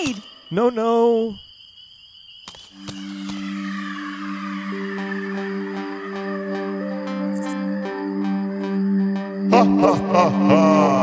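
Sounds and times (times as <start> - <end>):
short high repeating notes: 2.8 - 10.3
low held notes: 2.8 - 11.0.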